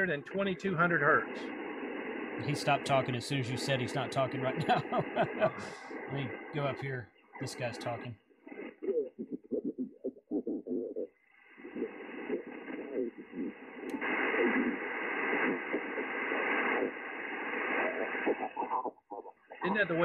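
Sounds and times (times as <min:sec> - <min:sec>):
muffled radio voice talking: 0:00.0 - 0:01.5, 0:02.4 - 0:08.2, 0:19.5 - 0:20.0
radio band hiss: 0:00.0 - 0:09.8, 0:10.4 - 0:20.0.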